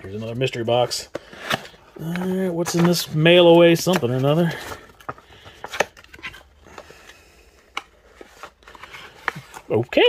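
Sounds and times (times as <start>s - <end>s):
cardboard and paper rustling: 0.0s - 10.0s.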